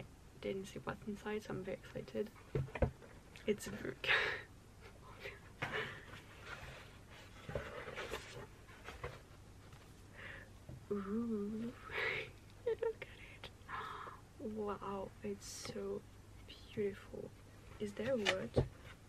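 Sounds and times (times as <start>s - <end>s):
wavering hum: 10.9s - 11.9s.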